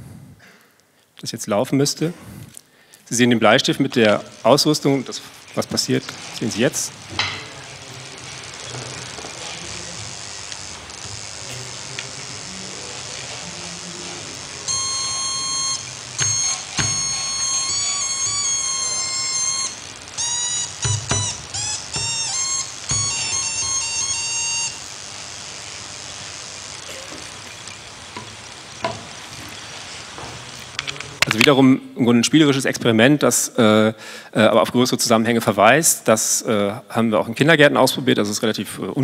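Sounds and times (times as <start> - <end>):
electronic tones from small speaker: 4.0 - 30.8.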